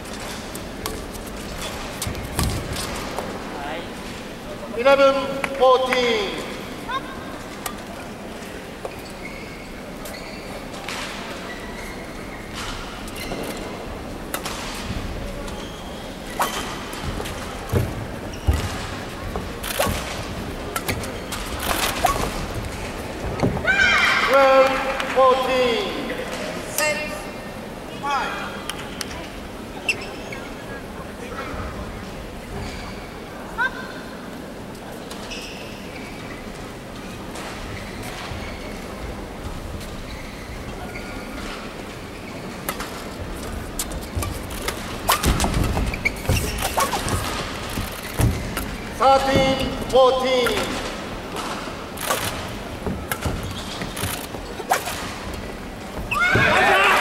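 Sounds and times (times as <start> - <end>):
shoes squeaking on court floor: 6.3 - 23.7, 29.8 - 30.8, 32.4 - 33.2, 35.0 - 57.0
racket hitting shuttlecock: 44.2 - 48.7.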